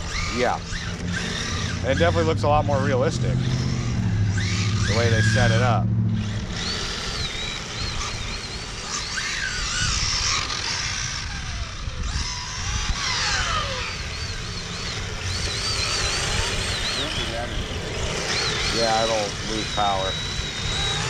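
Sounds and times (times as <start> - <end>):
electric rc car motors whining: 0.0 - 21.0
low steady rumble: 0.0 - 21.0.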